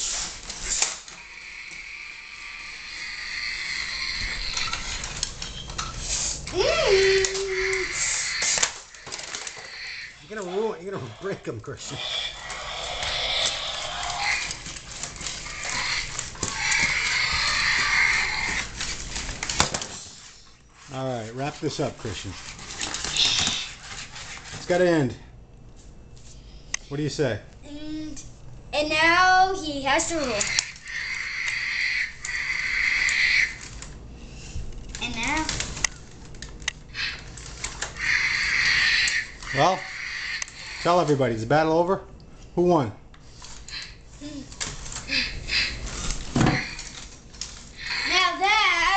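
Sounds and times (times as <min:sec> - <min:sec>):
toy electronic roaring growls: 0:01.1 - 0:05.4, 0:06.5 - 0:19.6, 0:29.9 - 0:33.9, 0:36.9 - 0:41.2, 0:45.0 - 0:47.1, 0:47.8 - 0:48.9.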